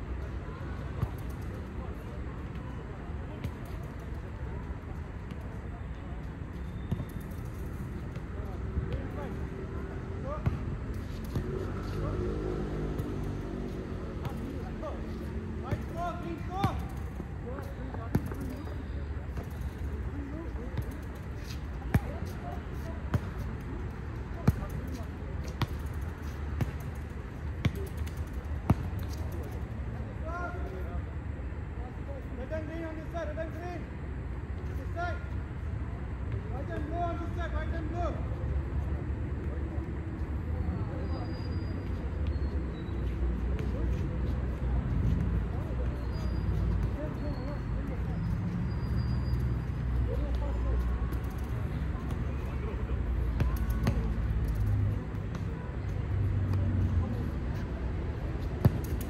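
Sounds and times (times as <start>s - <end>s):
distant players' voices: 0.0s - 59.0s
ball kicked and bouncing: 6.7s - 8.3s, 10.2s - 11.6s, 15.6s - 18.6s, 20.8s - 23.5s, 24.4s - 29.6s, 53.3s - 55.6s, 58.5s - 59.0s.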